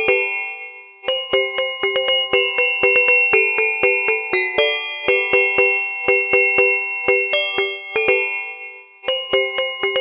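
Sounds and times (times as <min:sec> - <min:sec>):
chime-like electronic melody: 0:00.0 - 0:10.0.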